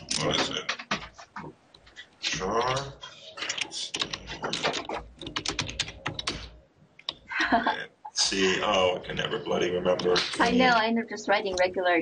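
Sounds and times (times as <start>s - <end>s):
typing on computer keyboard: 0.0s - 7.3s.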